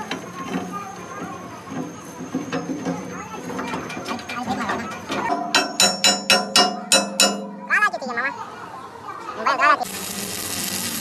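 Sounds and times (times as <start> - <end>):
hammer striking steel: 3.9 - 7.9.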